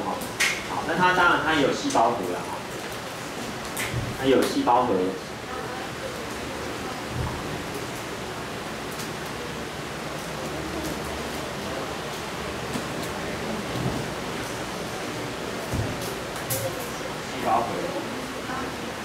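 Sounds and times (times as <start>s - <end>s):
room noise hiss: 0.0s - 19.0s.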